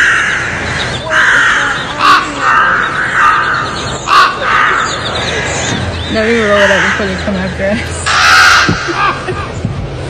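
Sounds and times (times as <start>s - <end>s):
flock of birds calling harshly: 0.0s - 9.7s.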